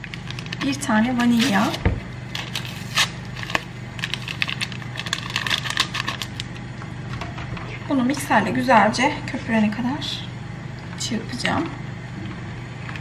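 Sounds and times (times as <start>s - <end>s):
paper sachet tearing and crinkling: 1.2s - 6.5s.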